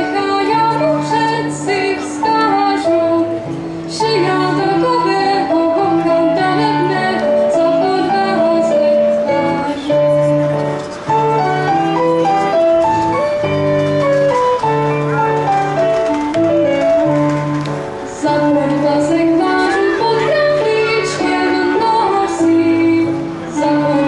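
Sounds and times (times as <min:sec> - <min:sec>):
folk band playing: 0:00.0 - 0:24.0.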